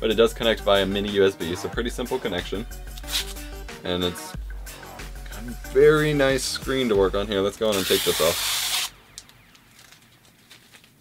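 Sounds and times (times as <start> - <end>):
plastic sleeve crinkling: 7.7 - 11.0.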